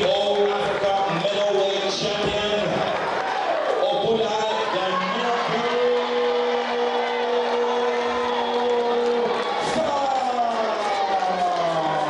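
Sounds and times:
crowd noise: 0.0 - 12.0
announcer calling over loudspeaker: 3.8 - 12.0.

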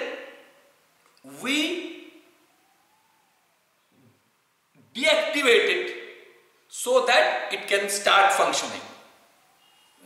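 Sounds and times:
faint rising and falling tone: 1.3 - 4.3, 9.0 - 10.0.

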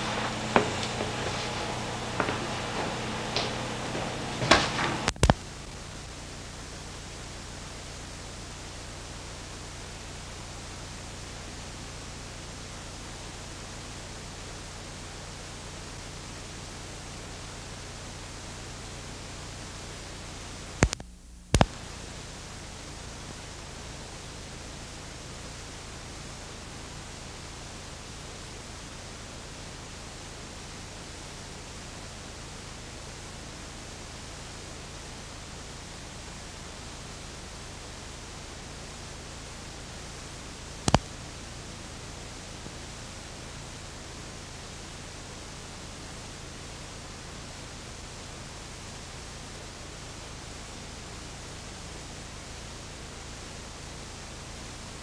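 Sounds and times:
tape hiss with low hum: 0.0 - 55.0
sharp clicks: 5.0 - 5.4, 20.8 - 21.8, 40.9 - 41.1.

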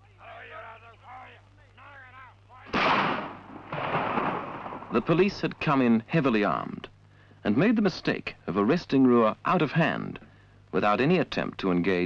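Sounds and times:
loud gunshots with echo: 2.7 - 5.2.

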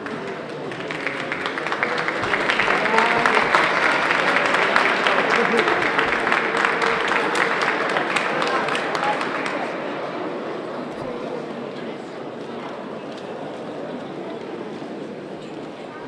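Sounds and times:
crowd clapping and cheering: 0.0 - 13.9.

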